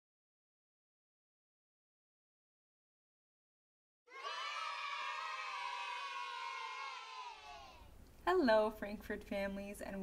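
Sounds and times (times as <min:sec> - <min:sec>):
children cheering and shouting: 0:04.1 - 0:07.9.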